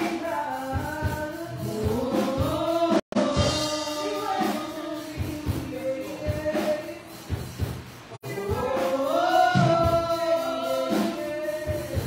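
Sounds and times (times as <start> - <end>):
gospel singing over drum kit: 0.0 - 12.0.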